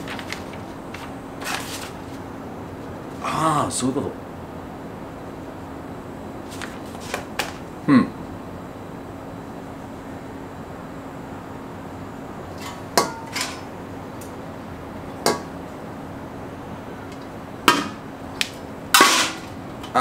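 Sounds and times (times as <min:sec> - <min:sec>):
knocks and clinks of metal grill parts: 0:19.0 - 0:20.0.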